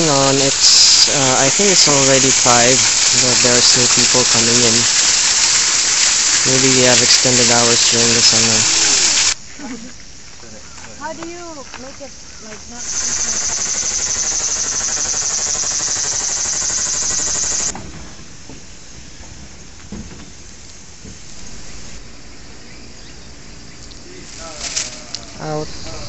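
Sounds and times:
cicada buzzing: 0.0s - 26.0s.

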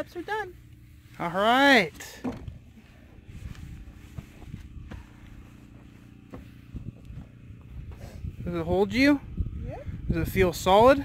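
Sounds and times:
footsteps on wooden steps: 2.2s - 8.0s.

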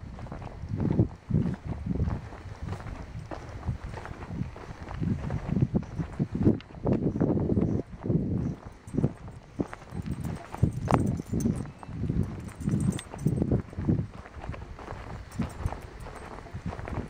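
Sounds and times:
footsteps on sand: 0.0s - 17.0s.

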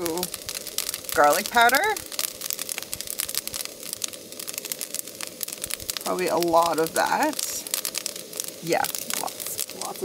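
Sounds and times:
noodles sizzling in a wok: 0.0s - 10.0s.

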